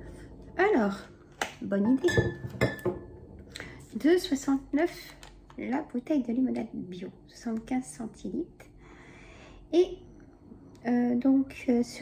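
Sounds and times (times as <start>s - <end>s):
glass bottles clinking: 2.0s - 3.1s.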